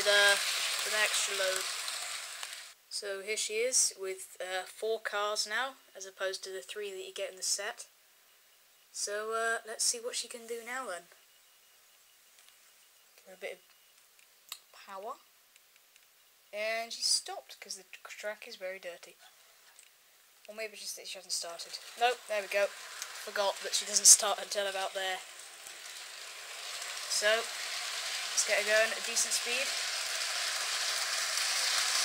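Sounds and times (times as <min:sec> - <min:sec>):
model train running on track: 0:00.0 - 0:03.5, 0:20.5 - 0:32.0
faint hiss: 0:00.0 - 0:32.0.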